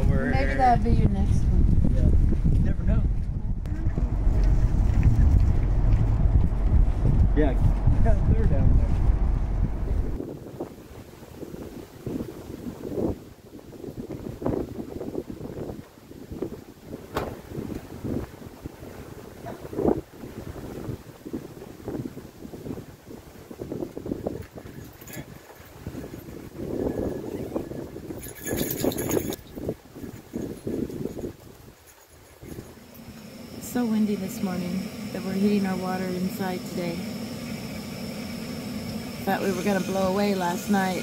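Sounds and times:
gusty wind buffeting microphone: 0.0s - 41.0s.

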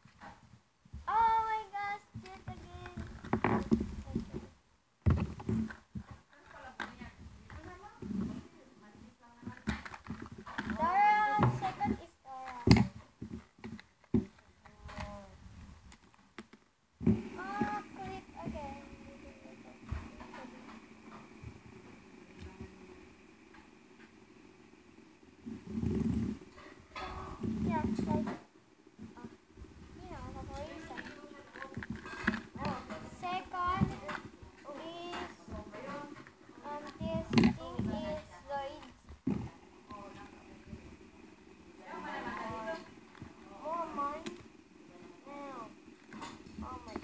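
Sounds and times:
child making sing-song sounds: 1.1s - 3.1s.

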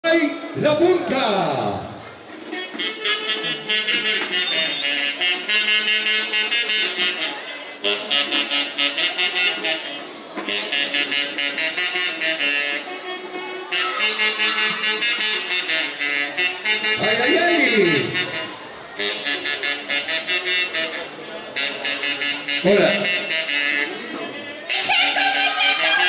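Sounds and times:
band playing live: 0.4s - 26.0s
saxophones playing melody: 1.8s - 26.0s.

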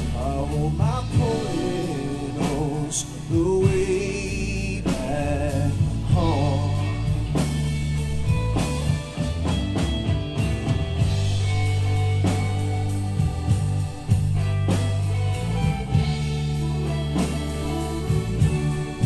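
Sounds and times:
live band playing slow song: 0.0s - 19.0s.

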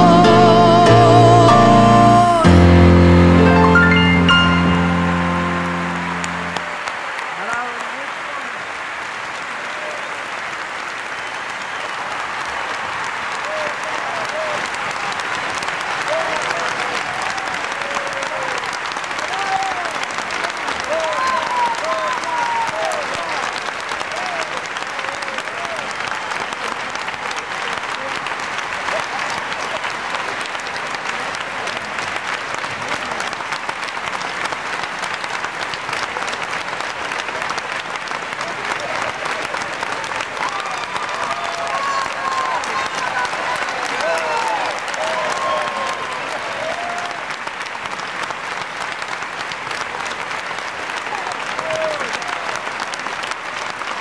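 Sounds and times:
large audience applauding: 0.0s - 54.0s.

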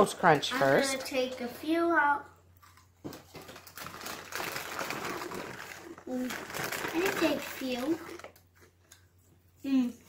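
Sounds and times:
cereal rustling and rattling in box: 3.3s - 8.3s.

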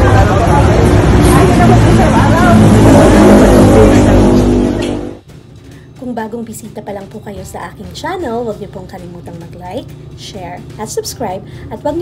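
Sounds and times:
people talking: 0.0s - 4.4s, 6.0s - 12.0s
street traffic rumble: 0.0s - 5.6s.

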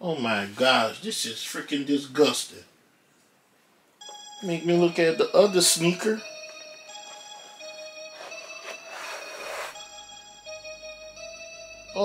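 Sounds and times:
background music with held tones: 4.0s - 12.0s
insole rustling scrape: 8.1s - 9.8s.

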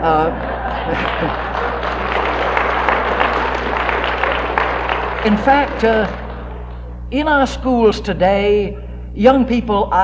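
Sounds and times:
audience laughing: 0.0s - 6.9s
audience clapping: 0.0s - 7.1s
low hum: 0.0s - 7.8s.

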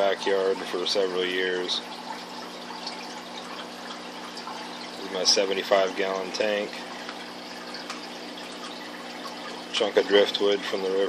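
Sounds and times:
faint steady hum: 0.0s - 11.0s
water splashing and trickling: 0.0s - 11.0s.

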